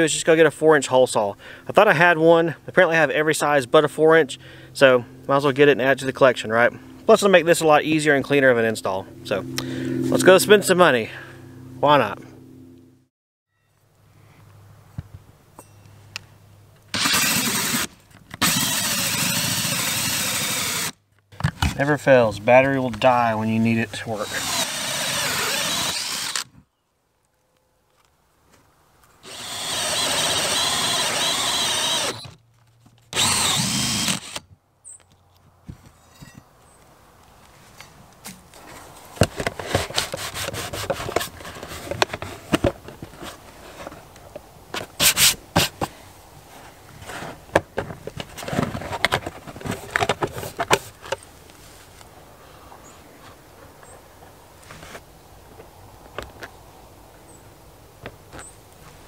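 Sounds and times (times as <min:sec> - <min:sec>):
drill with hole saw cutting: 0:16.9 - 0:21.0, 0:24.2 - 0:26.5, 0:29.2 - 0:32.4, 0:33.2 - 0:34.4.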